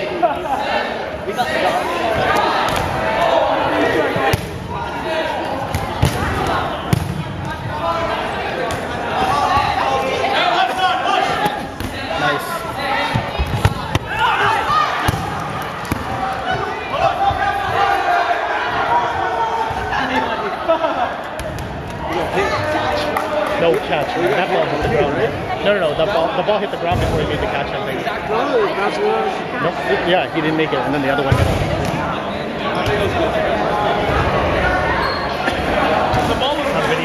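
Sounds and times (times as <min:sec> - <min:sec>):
people shouting and chattering: 0:00.0 - 0:37.0
balls bouncing on gym floor: 0:05.7 - 0:07.5, 0:13.1 - 0:14.2, 0:15.0 - 0:16.6.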